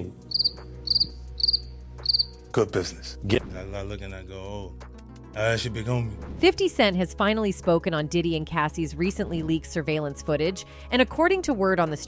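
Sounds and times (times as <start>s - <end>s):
cricket chirping: 0.3s - 2.4s.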